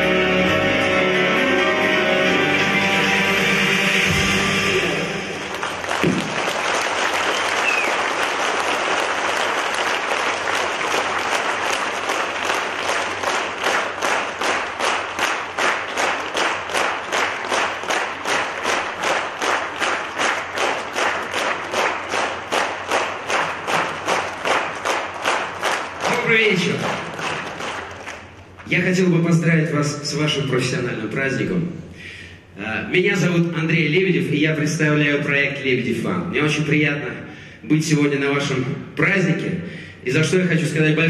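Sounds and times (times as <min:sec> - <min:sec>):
live band playing: 0:00.0 - 0:05.6
rhythmic clapping in unison: 0:04.1 - 0:28.9
audience applauding: 0:04.9 - 0:28.8.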